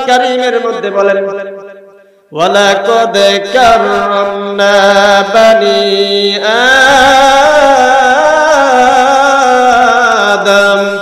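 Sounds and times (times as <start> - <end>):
man chanting through microphones: 0.0 - 11.0.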